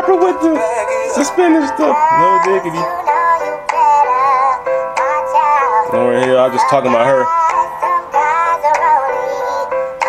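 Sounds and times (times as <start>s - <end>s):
voices singing in harmony: 0.3s - 10.0s.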